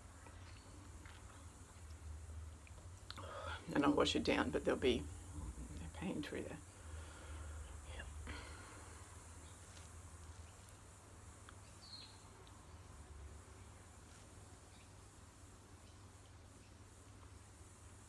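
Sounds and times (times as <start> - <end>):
low room hum: 0.0 - 18.0
soft breathy noises: 3.1 - 3.7, 6.6 - 10.0.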